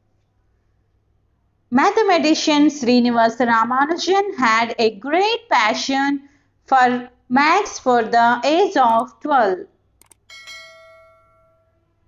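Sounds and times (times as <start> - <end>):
quick clicks: 10.0 - 10.3
notification bell chime: 10.3 - 11.8.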